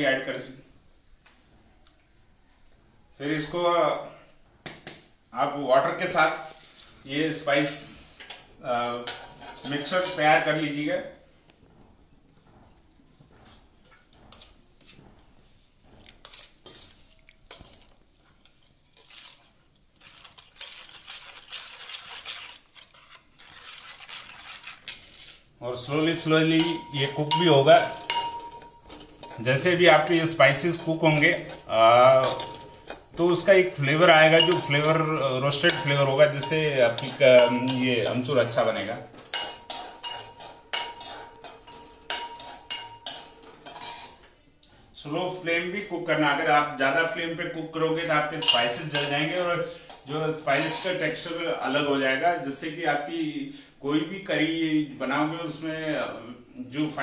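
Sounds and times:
spoon scraping metal bowl: 0:07.6 - 0:10.5, 0:14.3 - 0:15.0, 0:16.0 - 0:44.3, 0:48.0 - 0:51.2.

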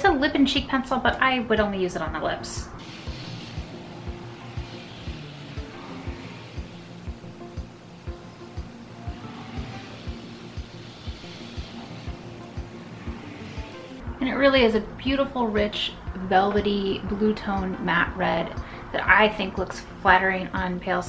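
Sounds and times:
background music with steady beat: 0:02.5 - 0:21.0.

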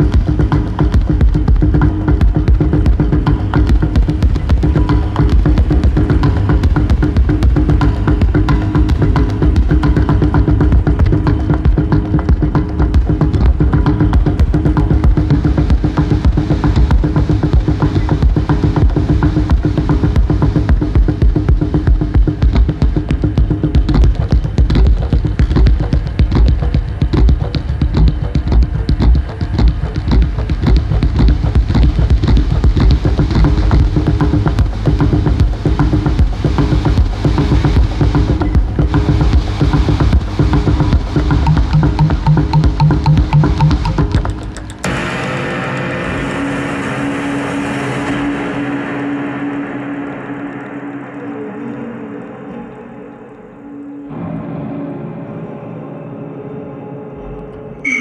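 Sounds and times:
techno beat with heavy bass: 0:00.0 - 0:44.9.

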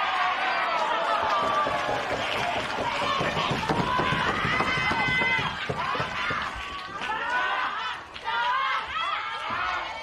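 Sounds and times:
people shouting and calling out: 0:00.0 - 0:10.0.

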